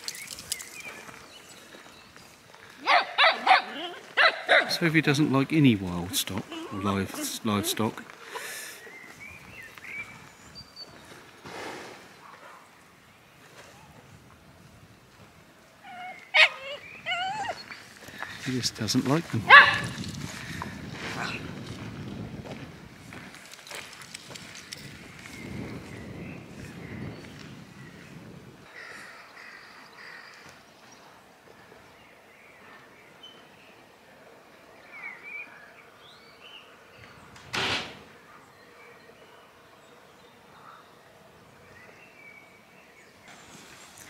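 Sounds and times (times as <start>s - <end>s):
footsteps on gravel: 0.0s - 4.5s, 17.6s - 27.6s
birds calling: 0.0s - 14.0s, 15.6s - 21.4s, 24.3s - 44.0s.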